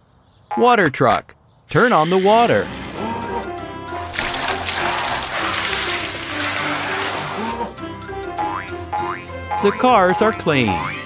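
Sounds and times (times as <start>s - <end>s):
light children's music: 3.0s - 11.0s
cartoon water spray: 4.0s - 7.7s
springy boing effects: 8.4s - 9.8s.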